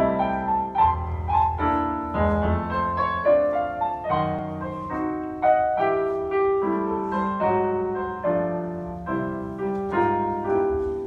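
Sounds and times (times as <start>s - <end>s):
slow piano ballad: 0.0s - 11.0s.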